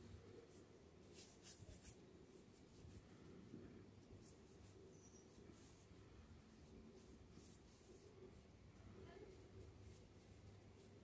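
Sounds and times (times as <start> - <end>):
rope rustling and scratching: 0.0 - 11.0.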